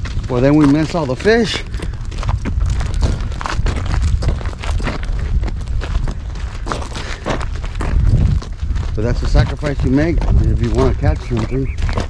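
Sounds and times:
footsteps on gravel: 0.0 - 12.0
low microphone rumble: 0.0 - 12.0.

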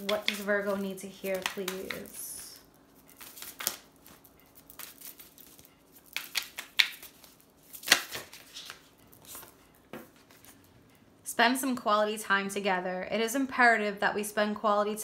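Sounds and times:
cards being shuffled: 0.0 - 10.6.

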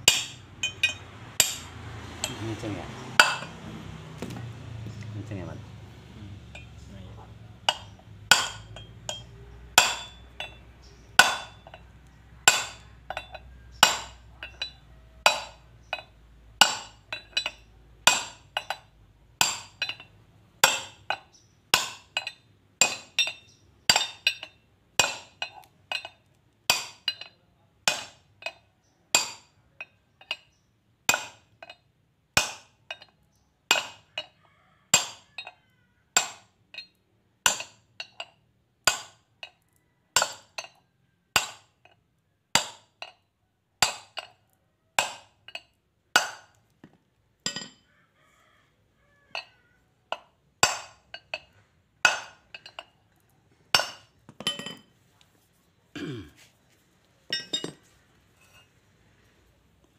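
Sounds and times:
hammer striking steel bar: 0.0 - 2.6, 3.2 - 3.6, 7.7 - 10.6, 11.2 - 11.8, 12.5 - 18.8, 19.4 - 20.0, 20.6 - 21.2, 21.8 - 26.1, 31.1 - 31.8, 32.4 - 33.1, 36.2 - 36.9, 37.5 - 38.2, 38.9 - 39.2, 41.4 - 41.7, 42.6 - 42.9, 46.2 - 46.6, 50.6 - 51.1, 52.0 - 52.9.

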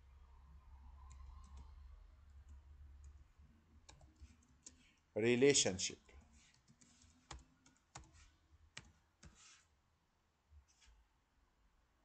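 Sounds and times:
faint low hum: 0.0 - 9.2.

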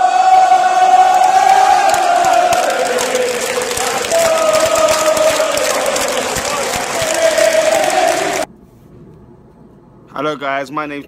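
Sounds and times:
crowd chanting in held notes: 0.0 - 8.5.

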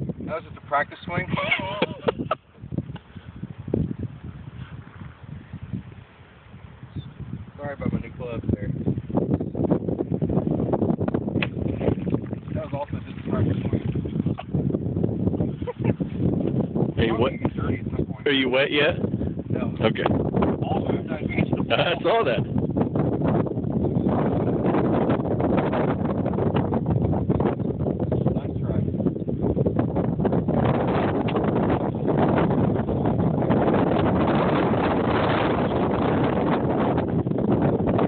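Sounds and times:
wind buffeting microphone: 0.0 - 38.0
golf club striking water splash: 11.3 - 13.4.

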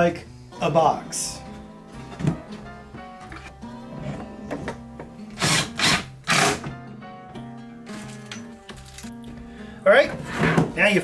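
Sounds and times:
background music: 0.0 - 11.0
power drill driving screws: 5.4 - 6.7.

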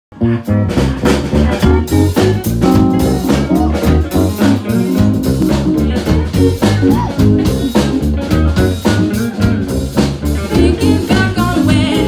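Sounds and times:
bass guitar line: 0.1 - 12.0
drum kit beat: 0.1 - 12.0
keyboard chords: 0.1 - 12.0.

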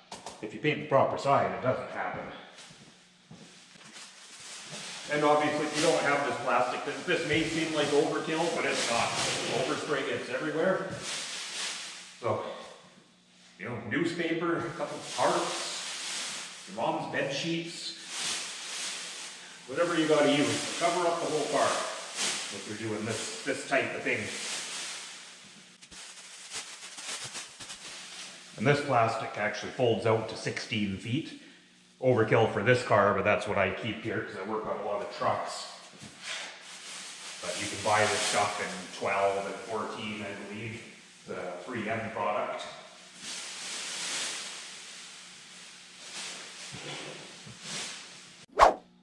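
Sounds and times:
plastic sheeting rustling and crackling: 2.4 - 13.6, 14.2 - 29.7, 35.7 - 48.8.

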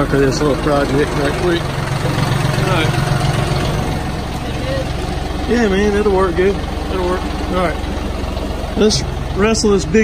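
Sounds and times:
tractor diesel engine idling: 0.0 - 10.0.

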